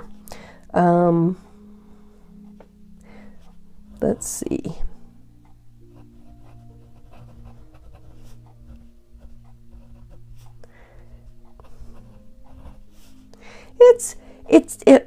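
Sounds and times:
soft background music: 0.0 - 15.0
pen scratching on paper: 6.0 - 10.6, 11.4 - 13.2.

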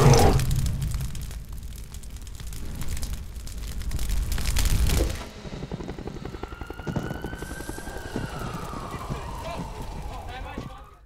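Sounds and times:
rapid irregular crackle: 0.0 - 11.0
siren wailing: 5.1 - 11.0.

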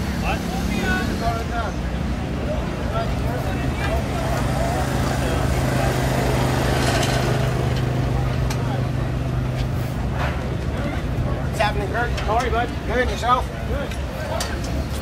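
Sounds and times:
voices: 0.0 - 15.0.

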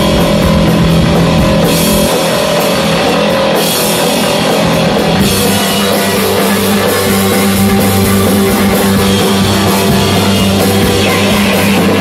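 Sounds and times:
rock band playing live: 0.0 - 12.0.

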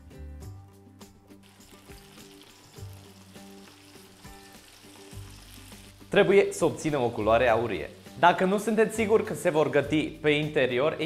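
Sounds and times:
soft background music: 0.0 - 11.0
food deep-frying in oil: 1.4 - 9.6.

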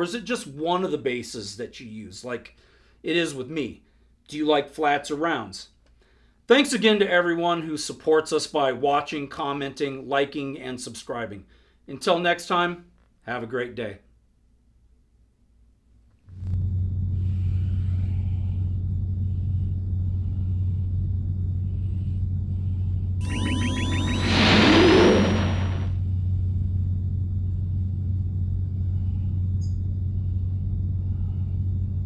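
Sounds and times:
low rumble: 16.5 - 32.0
whoosh of rising sweeping tones: 23.2 - 26.0.

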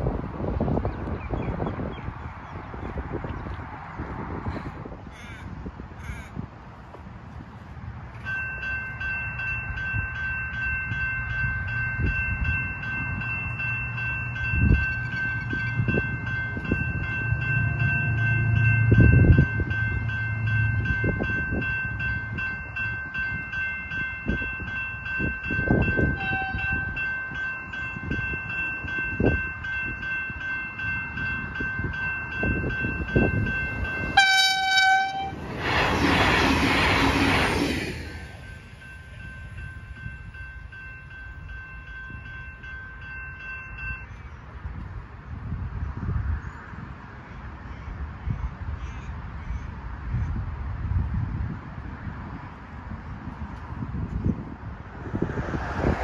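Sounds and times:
train rushing past: 7.1 - 44.1, 53.4 - 56.0
level crossing bells ringing: 8.2 - 35.3, 38.3 - 44.1
train horn blast: 26.1 - 27.0, 34.1 - 35.4.

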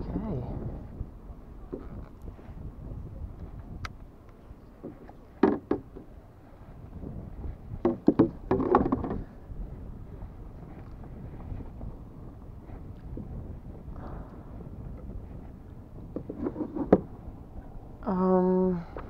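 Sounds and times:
wind buffeting microphone: 0.0 - 19.0
gear knocking against kayak hull: 4.8 - 6.2, 7.7 - 9.4, 16.0 - 17.2.

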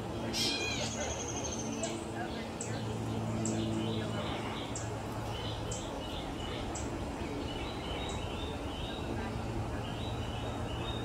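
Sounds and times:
bird mewing call: 0.3 - 1.7.

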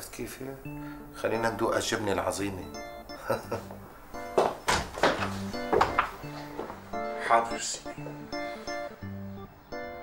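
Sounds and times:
music with sustained tones: 0.1 - 10.0
hand claps: 4.4 - 6.2.

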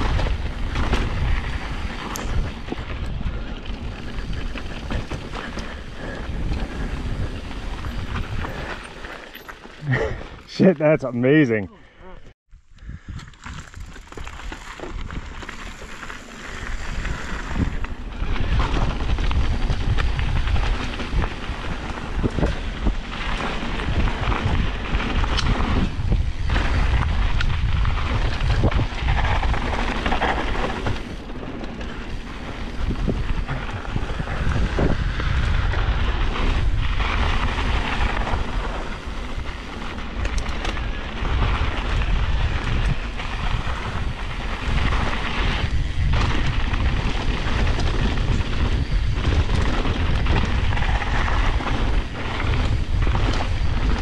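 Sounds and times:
wind buffeting microphone: 0.0 - 9.2, 12.7 - 54.0
bike tyres rolling over dirt: 0.0 - 10.8, 12.6 - 54.0.

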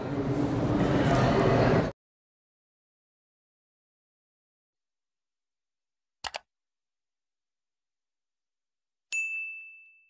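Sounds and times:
bright bell ding: 9.1 - 10.0.

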